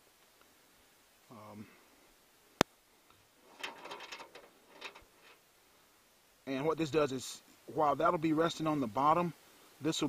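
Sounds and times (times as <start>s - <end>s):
fishing gear clicks and rattles: 3.5s - 5.4s.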